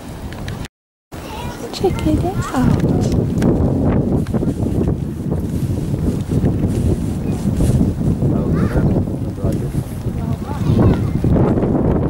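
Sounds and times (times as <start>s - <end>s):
wind rumble on microphone: 0.0s - 12.0s
indistinct voices: 1.2s - 3.2s.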